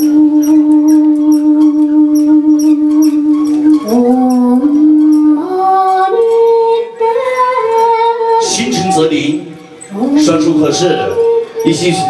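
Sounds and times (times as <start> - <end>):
backing music with light ticks: 0.0 - 12.0
person singing long notes: 0.0 - 12.0.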